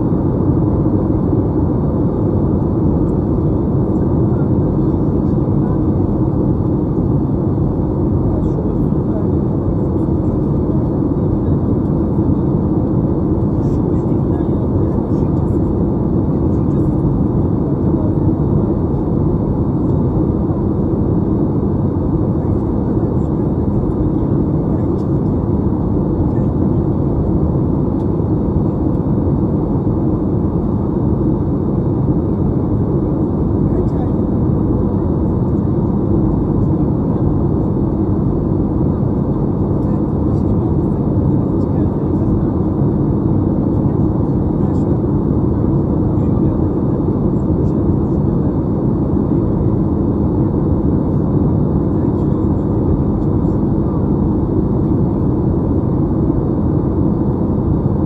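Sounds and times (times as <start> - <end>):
airliner cabin engine roar: 0.0 - 58.0
low steady hum: 0.0 - 58.0.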